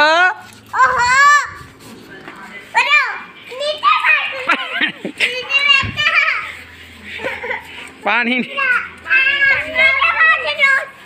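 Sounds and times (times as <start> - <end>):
child calling and babbling: 0.7 - 1.6, 2.8 - 6.6, 8.5 - 11.0.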